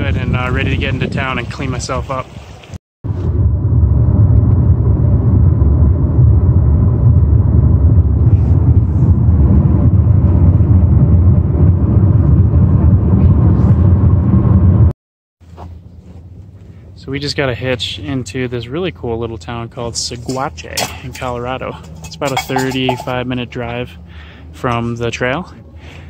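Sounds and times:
car road and wind rumble: 0.0s - 26.0s.

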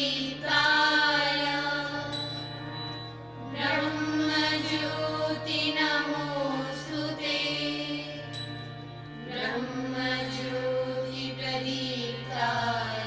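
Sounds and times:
mantra chanting with music: 0.0s - 13.0s
steady low drone: 0.0s - 13.0s.

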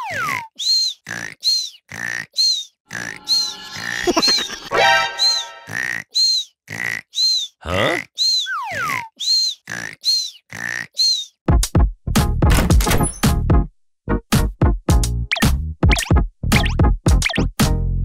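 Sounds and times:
cartoon snoring: 6.9s - 8.1s.

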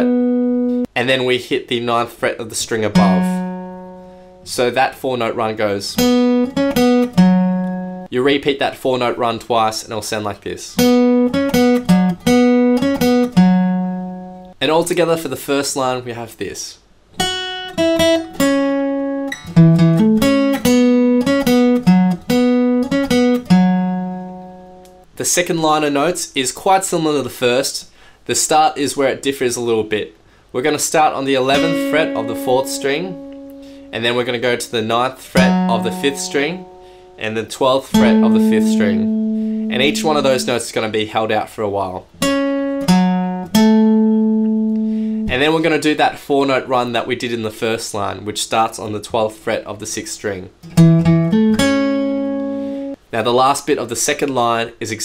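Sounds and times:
acoustic guitar picking riff: 0.0s - 0.9s, 2.8s - 4.6s, 5.9s - 8.1s, 10.8s - 14.6s, 17.2s - 25.1s, 31.3s - 41.0s, 42.1s - 45.8s, 50.6s - 53.0s.

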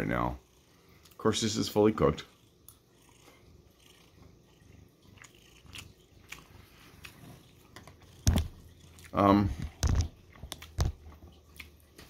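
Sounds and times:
cat purring: 0.0s - 11.2s
person chewing: 5.0s - 12.0s.

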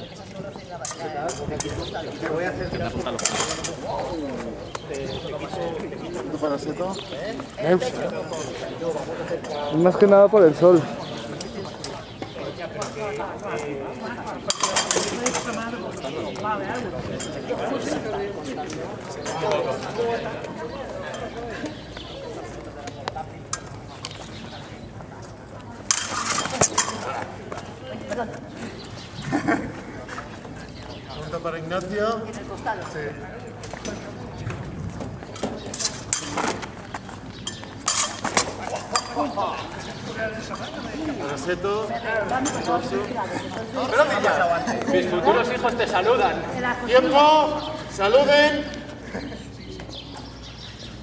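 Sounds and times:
people talking at once: 0.0s - 34.9s, 38.4s - 50.9s.

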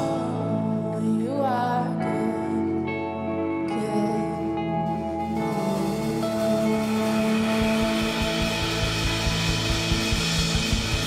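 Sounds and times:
worship band music: 0.0s - 11.0s
cymbal wash: 5.2s - 11.0s
drum kit rapid hits: 5.4s - 11.0s.

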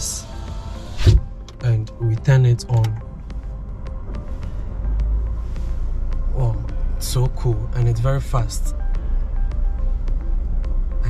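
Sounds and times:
car air vent airflow: 0.0s - 1.5s.

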